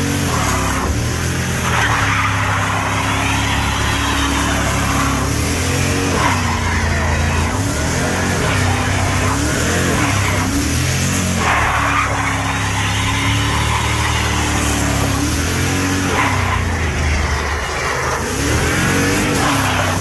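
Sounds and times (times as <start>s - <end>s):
engine revving high: 0.0s - 20.0s
tyres squealing on pavement: 0.0s - 20.0s.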